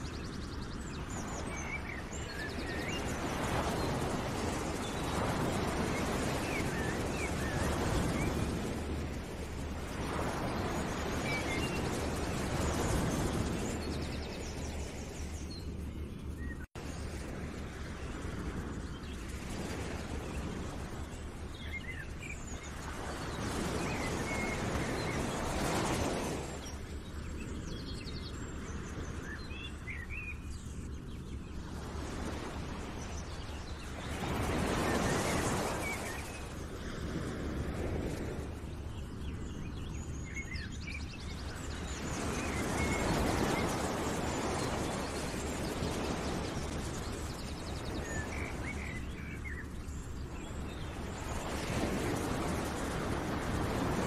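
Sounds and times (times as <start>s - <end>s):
small birds chirping: 0.0s - 54.0s.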